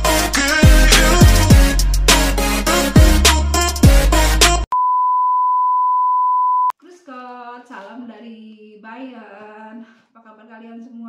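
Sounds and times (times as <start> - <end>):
intro music: 0.0 - 4.7
steady electronic beep tone: 4.7 - 6.7
woman speaking: 6.8 - 11.0.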